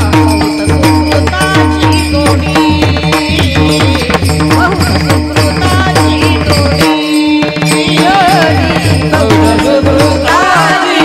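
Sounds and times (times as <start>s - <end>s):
hand cymbals struck: 0.0s - 11.0s
voices singing devotional music: 0.0s - 11.0s.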